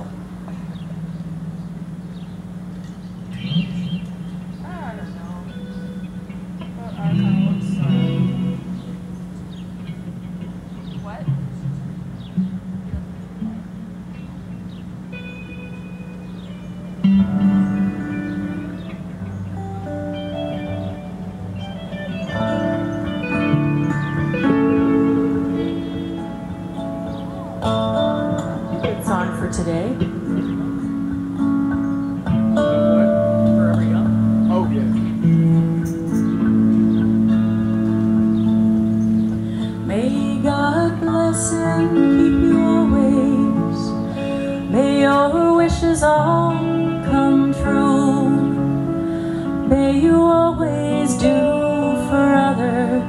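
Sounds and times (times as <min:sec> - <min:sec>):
electric and acoustic guitars: 0:00.0 - 0:53.0.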